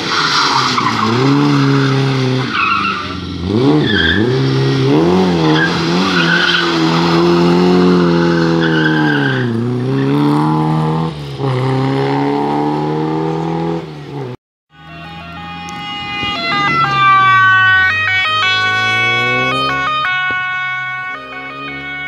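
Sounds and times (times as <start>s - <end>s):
rally car engine revving: 0.0s - 14.4s, 15.0s - 22.0s
tyre squeals: 0.1s - 4.4s, 5.4s - 9.5s.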